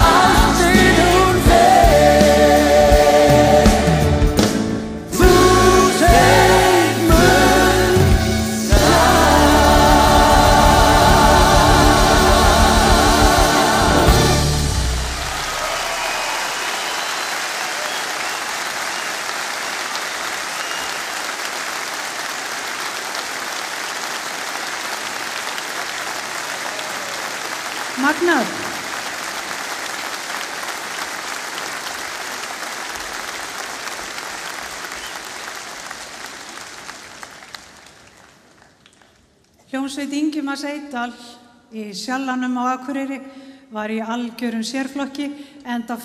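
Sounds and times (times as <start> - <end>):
audience applauding: 8.7 - 39.3
rising call from crowd: 15.0 - 21.3.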